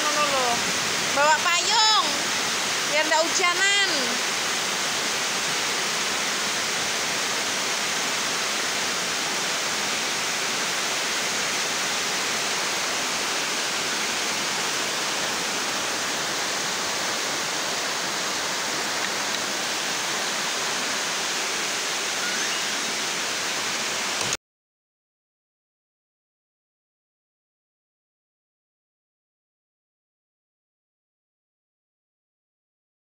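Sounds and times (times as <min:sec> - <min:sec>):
rain falling steadily: 0:00.0 - 0:24.4.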